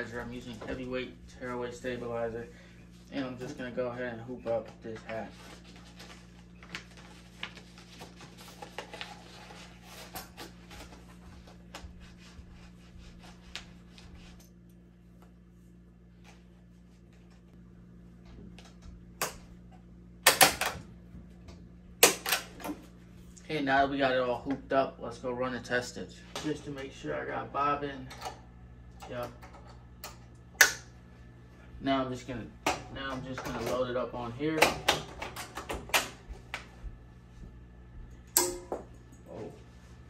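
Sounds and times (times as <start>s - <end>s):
low steady hum: 0.0s - 40.0s.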